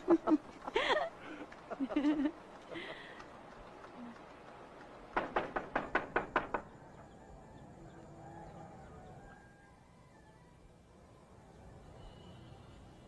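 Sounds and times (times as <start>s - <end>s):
sharp knocks: 5.1s - 6.7s.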